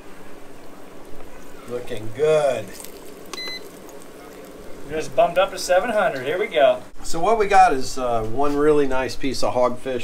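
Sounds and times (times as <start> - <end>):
cooktop control panel beep: 3.3 - 3.7.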